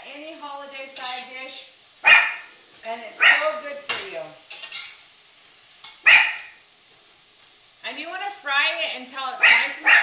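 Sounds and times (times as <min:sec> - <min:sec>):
dog barking loudly: 0:02.0 - 0:02.5, 0:03.2 - 0:03.6, 0:06.0 - 0:06.6, 0:09.4 - 0:10.0.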